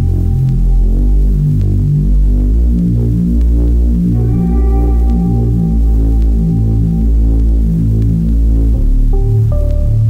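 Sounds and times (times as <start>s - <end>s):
deep electronic bass notes: 0.0s - 10.0s
instrumental hip-hop beat: 0.0s - 10.0s.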